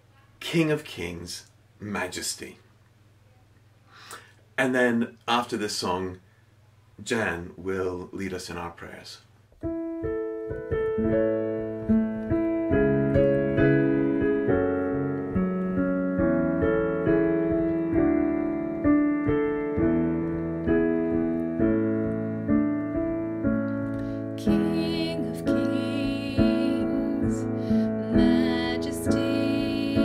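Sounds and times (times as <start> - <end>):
piano chords: 9.6 - 30.0
person singing: 24.4 - 30.0.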